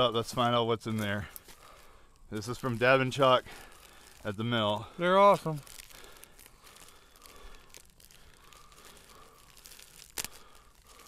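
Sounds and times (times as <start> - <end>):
plastic rustling: 0.0 - 11.0
plastic tearing snap: 5.3 - 11.0.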